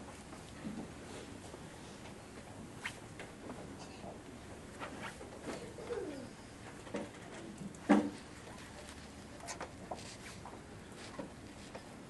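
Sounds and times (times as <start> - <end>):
soft vocal coos: 5.5 - 6.5.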